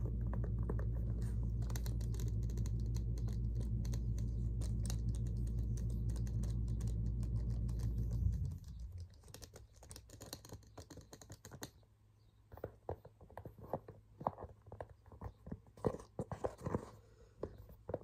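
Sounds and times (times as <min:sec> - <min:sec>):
steady low hum: 0:00.0 - 0:10.1.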